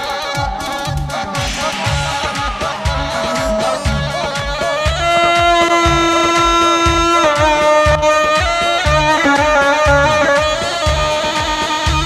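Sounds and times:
double reed pipe long note: 0:00.0 - 0:12.0
steady drum beat: 0:00.0 - 0:12.0.

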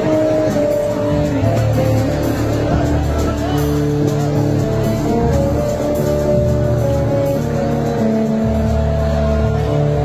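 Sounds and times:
acoustic guitar long held notes: 0:00.0 - 0:10.0
deep bass line: 0:00.0 - 0:10.0.

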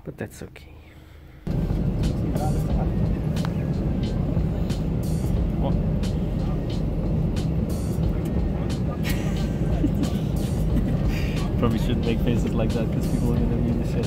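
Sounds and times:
airliner cabin engine rumble: 0:00.0 - 0:14.0.

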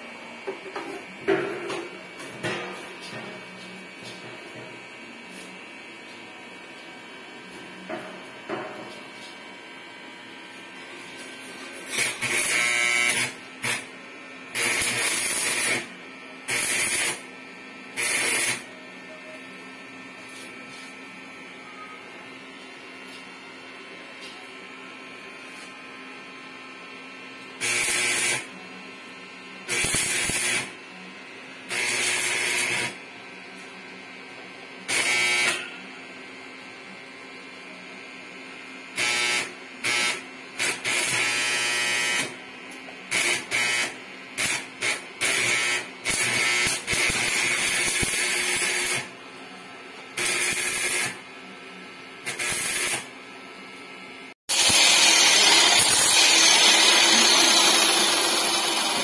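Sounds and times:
loud continuous welding noise: 0:00.0 - 0:59.0
welding machine hum: 0:00.0 - 0:59.0
arc welding bursts: 0:11.8 - 0:13.9, 0:14.5 - 0:17.3, 0:17.9 - 0:18.7, 0:27.6 - 0:28.5, 0:29.7 - 0:30.8, 0:31.7 - 0:33.0, 0:34.9 - 0:35.6, 0:39.0 - 0:42.4, 0:43.1 - 0:49.2, 0:50.1 - 0:51.3, 0:52.2 - 0:53.1, 0:54.5 - 0:59.0.

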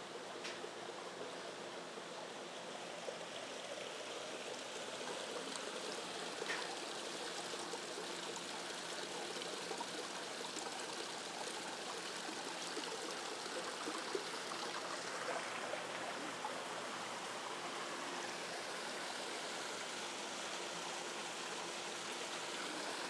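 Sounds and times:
stream trickling over rocks: 0:00.0 - 0:23.0.

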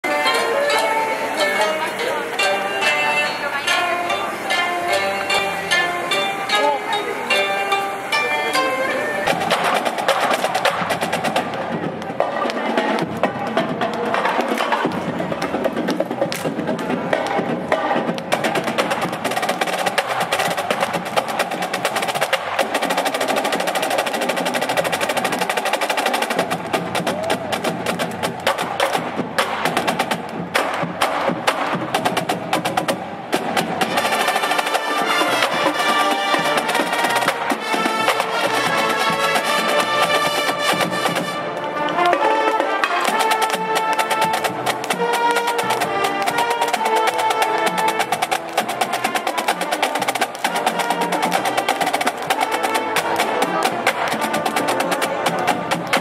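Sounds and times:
koto plucked strings: 0:00.0 - 0:09.5
marching band playing: 0:00.0 - 0:56.0
snare drum cadence with rolls: 0:08.9 - 0:56.0.

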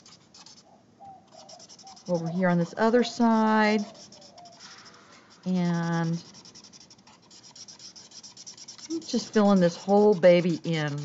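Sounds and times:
marker rubbing on paper: 0:00.0 - 0:00.6, 0:01.3 - 0:11.0.

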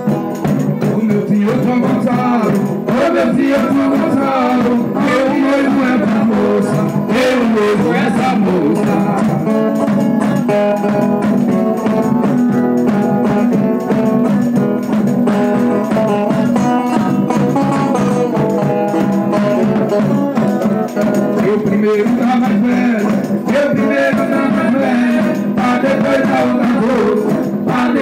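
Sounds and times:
folk dance music with held chords: 0:00.0 - 0:28.0
people singing: 0:01.0 - 0:09.7, 0:21.4 - 0:28.0.

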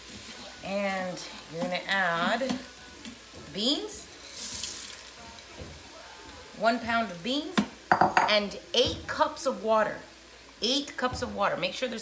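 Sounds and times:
beans pouring into steel pot: 0:04.2 - 0:05.2.

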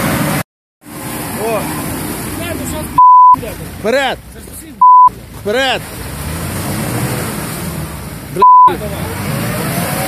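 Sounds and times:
tyres churning in mud: 0:00.0 - 0:10.0.

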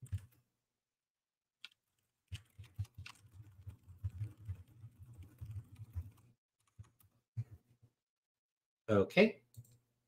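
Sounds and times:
fast typing on keyboard: 0:00.0 - 0:00.3, 0:02.3 - 0:07.1.

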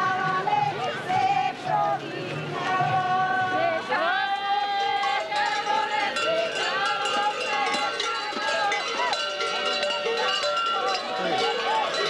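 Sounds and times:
voices singing folk song: 0:00.0 - 0:12.0
large bells clanking: 0:05.3 - 0:12.0.

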